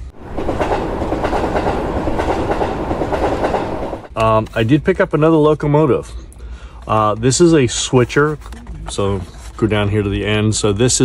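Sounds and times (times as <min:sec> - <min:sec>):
train wheels clattering on rail: 0:00.0 - 0:04.2.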